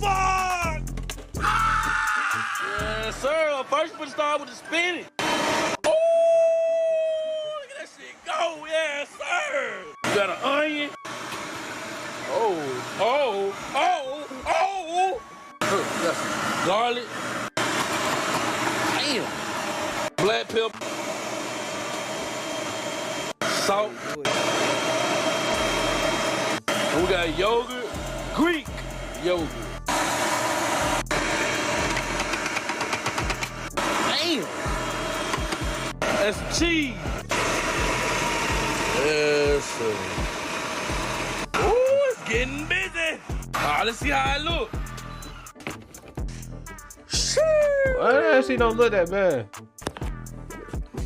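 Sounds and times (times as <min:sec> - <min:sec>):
blender whining: 0:04.9 - 0:05.9, 0:10.0 - 0:14.5, 0:15.2 - 0:45.5
food processor whirring: 0:05.1 - 0:05.8, 0:11.0 - 0:14.4, 0:15.6 - 0:44.3.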